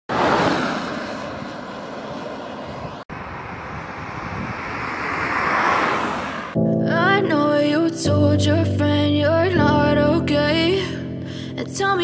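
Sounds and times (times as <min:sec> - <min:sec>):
road vehicles passing: 0:00.1 - 0:06.6.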